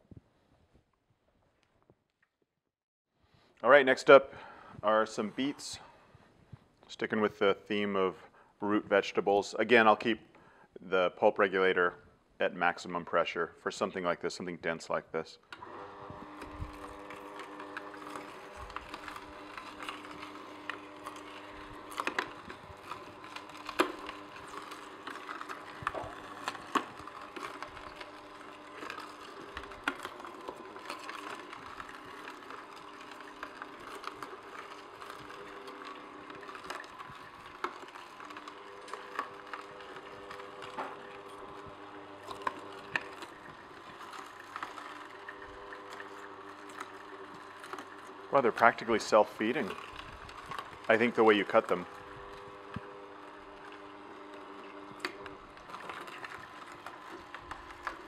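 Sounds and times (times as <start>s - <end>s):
juicer motor humming: 4.0s - 6.2s, 15.4s - 58.0s.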